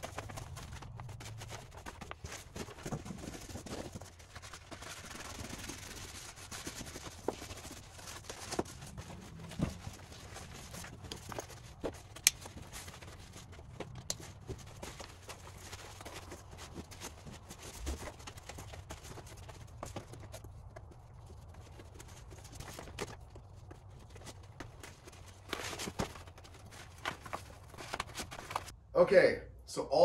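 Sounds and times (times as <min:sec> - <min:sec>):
foam pad rustling: 0:00.0 - 0:28.7.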